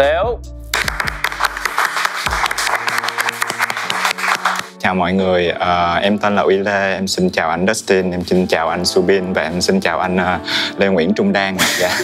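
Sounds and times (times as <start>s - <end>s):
background music: 0.0s - 12.0s
people clapping: 0.7s - 4.8s.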